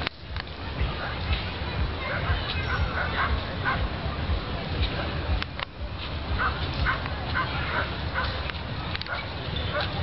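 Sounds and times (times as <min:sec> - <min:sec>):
steady low rumble: 0:00.0 - 0:10.0.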